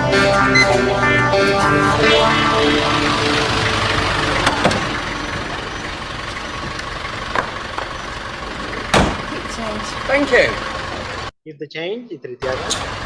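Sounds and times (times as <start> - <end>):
taxi engine running: 0.0 - 11.3.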